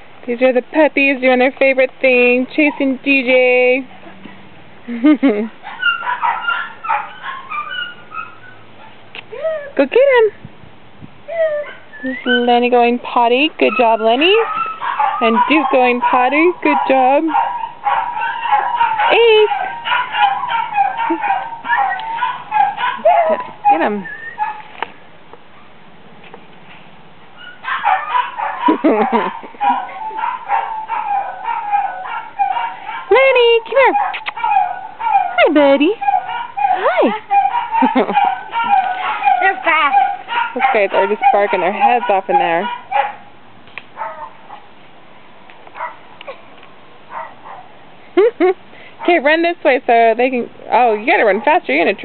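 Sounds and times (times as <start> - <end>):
small dogs barking: 5.6 - 9.0, 13.6 - 24.8, 27.4 - 44.8, 45.7 - 47.8, 51.0 - 52.0
puppies yipping: 5.6 - 9.7, 11.3 - 24.8, 27.4 - 44.7, 45.7 - 47.8.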